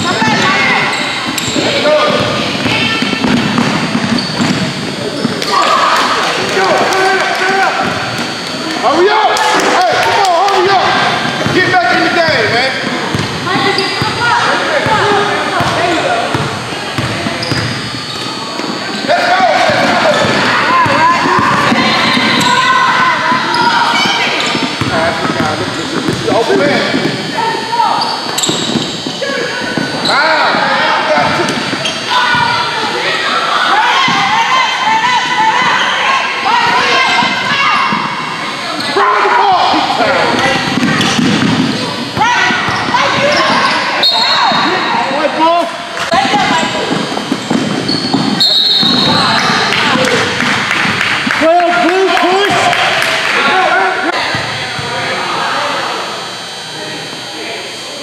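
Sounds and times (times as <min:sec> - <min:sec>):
voices shouting: 0:05.0 - 0:50.5.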